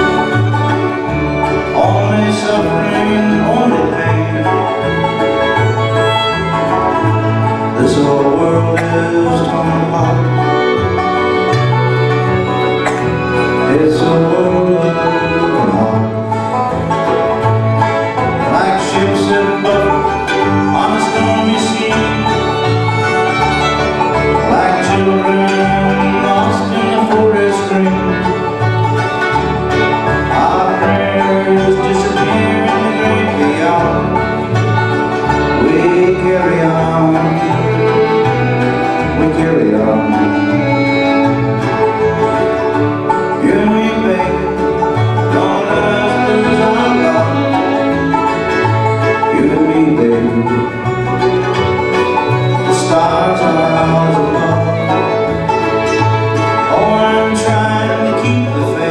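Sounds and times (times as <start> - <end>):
acoustic guitar: 0.0 - 58.9
banjo: 0.0 - 58.9
fiddle: 0.0 - 58.9
mandolin: 0.0 - 58.9.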